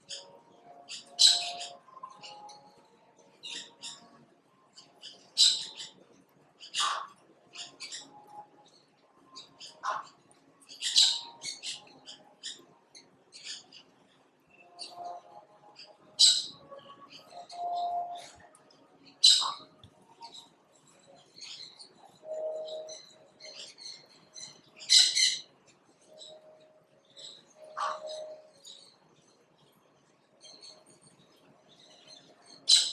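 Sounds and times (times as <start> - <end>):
birds chirping: 0.0 - 32.9.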